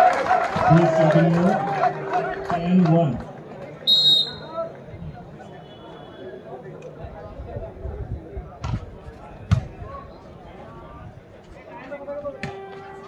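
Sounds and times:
crowd chatter: 0:00.0 - 0:13.0
referee's whistle: 0:03.8 - 0:04.6.

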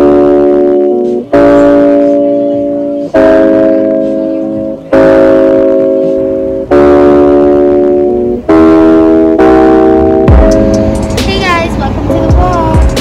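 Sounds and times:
guitar chords ringing: 0:00.0 - 0:13.0.

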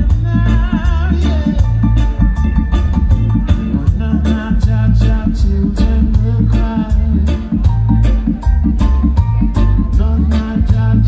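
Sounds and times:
live reggae band playing: 0:00.0 - 0:11.0.

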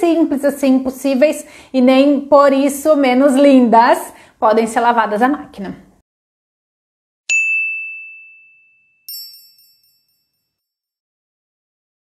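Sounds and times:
clear ding: 0:07.3 - 0:10.4
high tinkling chime: 0:07.3 - 0:10.9.

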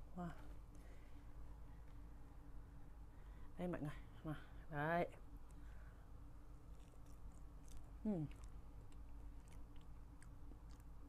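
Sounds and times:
low room hum: 0:00.0 - 0:11.0
faint chewing: 0:06.5 - 0:11.0.

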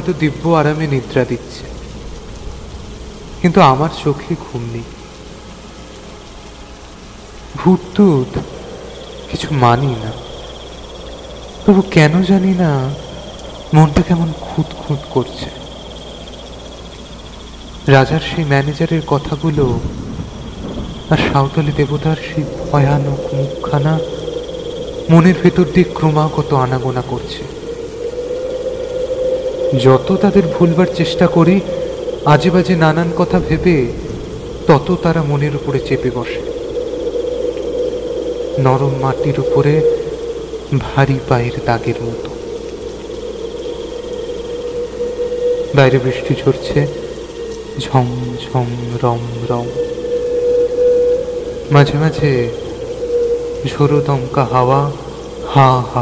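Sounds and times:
crickets chirping: 0:00.0 - 0:56.0
soft hiss: 0:00.0 - 0:56.0
steady low hum: 0:00.0 - 0:56.0.

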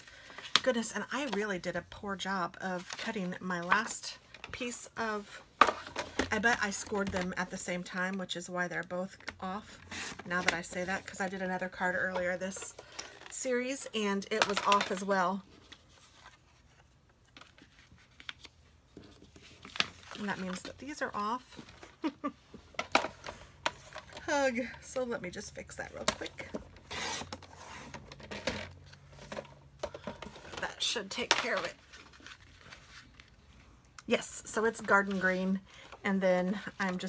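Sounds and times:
faint paper rustles: 0:14.6 - 0:22.1, 0:26.0 - 0:33.8.

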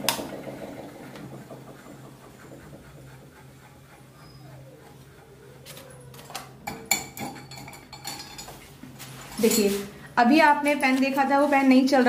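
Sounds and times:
low motor hum: 0:00.0 - 0:06.6.

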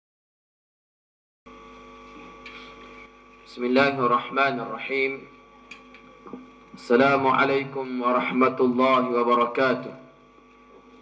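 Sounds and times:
electrical mains hum: 0:01.5 - 0:11.0.

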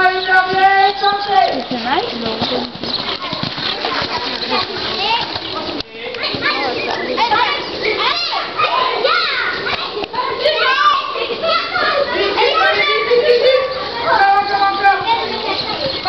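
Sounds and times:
young voices chattering: 0:00.0 - 0:16.0.

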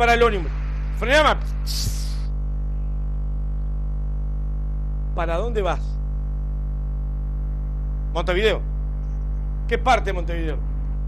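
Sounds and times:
mains hum: 0:00.0 - 0:11.0
breathy shh: 0:01.5 - 0:03.0.

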